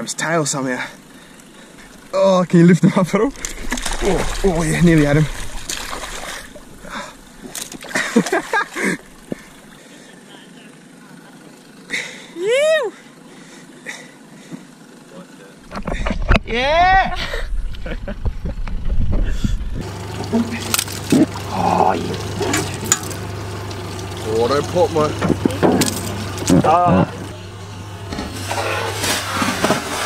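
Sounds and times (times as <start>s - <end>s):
boat engine idling: 0.7s - 12.4s, 19.8s - 30.0s
water splashing: 3.0s - 9.8s, 19.8s - 30.0s.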